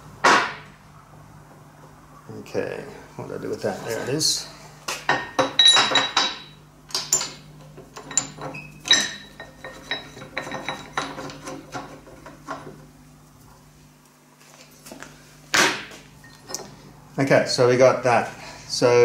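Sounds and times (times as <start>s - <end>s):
metal tools knocking on steel: 5.1s - 7.4s, 8.0s - 12.7s.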